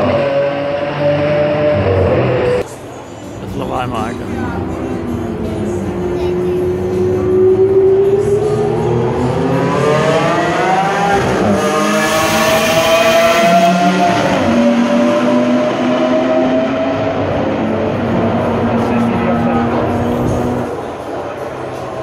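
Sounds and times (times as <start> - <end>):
sports car engines accelerating: 0.0 - 3.5, 4.2 - 22.0.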